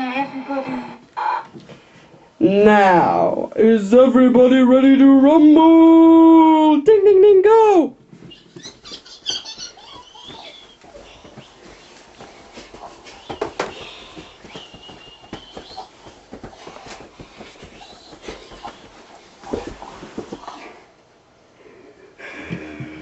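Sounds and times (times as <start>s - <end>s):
bumps and thuds: 12.6s - 20.6s.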